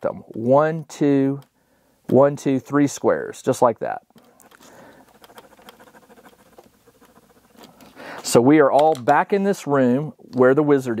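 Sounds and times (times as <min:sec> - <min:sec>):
pen scratching on paper: 0:04.4 - 0:07.9.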